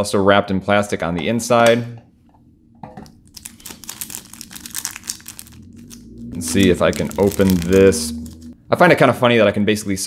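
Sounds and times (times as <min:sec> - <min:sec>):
plastic bag crinkling: 0:03.2 - 0:08.5.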